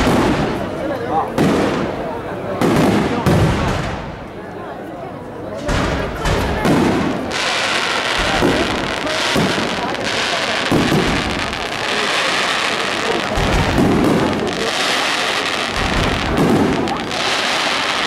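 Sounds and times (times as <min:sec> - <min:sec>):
firework booms: 0:00.0 - 0:04.3, 0:05.6 - 0:18.0
hiss of burning fireworks: 0:00.0 - 0:04.4, 0:05.6 - 0:18.0.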